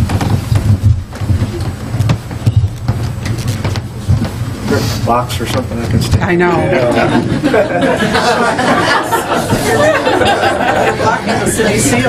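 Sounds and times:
knocks and clicks: 0.0s - 4.4s
microphone handling noise: 0.0s - 6.5s.

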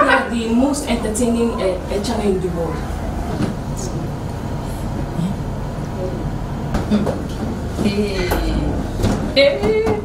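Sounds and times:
low background hum and rumble: 0.0s - 10.0s.

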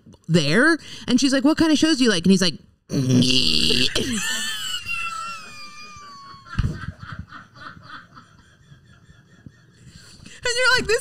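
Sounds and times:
people laughing hard: 3.9s - 10.2s
breathy giggling: 3.9s - 10.3s.

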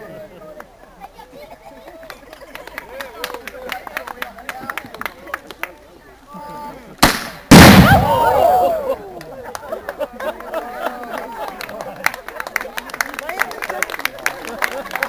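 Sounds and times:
projector firing bang: 7.0s - 8.5s
loud explosion: 7.0s - 8.7s.

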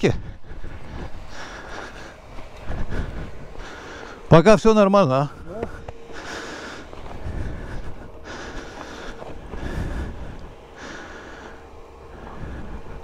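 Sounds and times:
wind rumbling on microphone: 0.0s - 4.0s, 6.8s - 11.0s
person breathing heavily: 0.0s - 4.3s, 5.2s - 13.0s.

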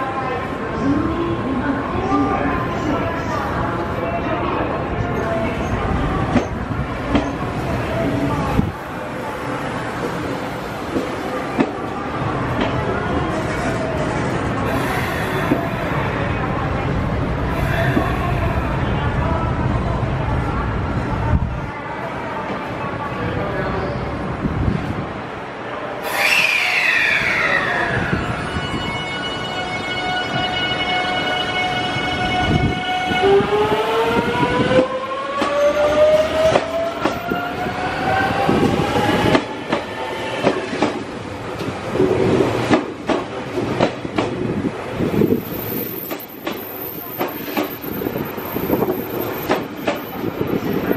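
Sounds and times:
train wheels rumbling on rails: 32.2s - 50.9s.

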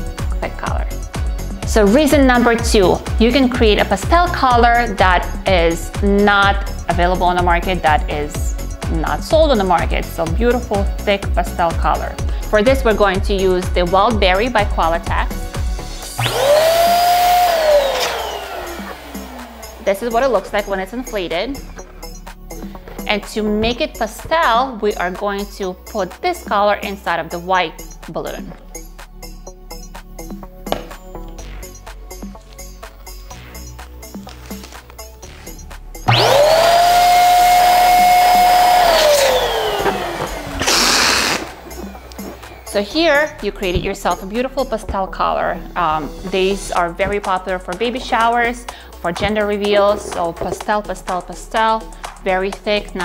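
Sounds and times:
electric balloon inflator motor: 15.6s - 21.9s, 36.1s - 42.8s.

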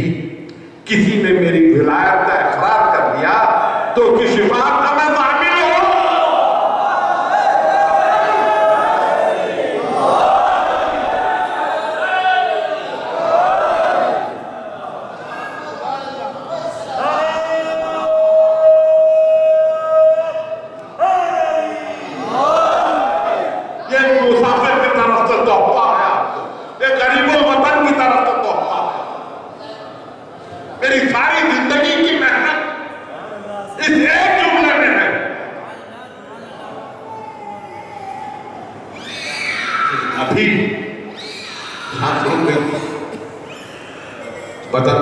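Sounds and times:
high-pitched wavering cry: 37.0s - 40.2s, 41.1s - 42.4s, 43.4s - 44.6s.

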